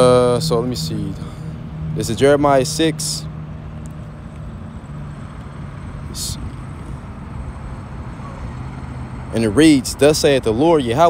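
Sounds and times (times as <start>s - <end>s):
constant low hum: 0.0s - 11.0s.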